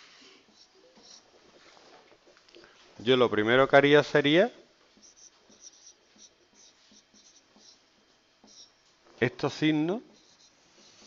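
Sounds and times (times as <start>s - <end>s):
marker writing on whiteboard: 0.4s - 1.6s, 4.9s - 8.8s, 10.0s - 11.0s.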